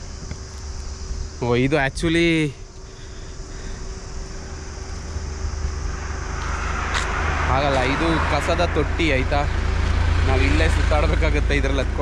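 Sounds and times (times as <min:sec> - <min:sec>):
car approaching: 0:02.6 - 0:12.0.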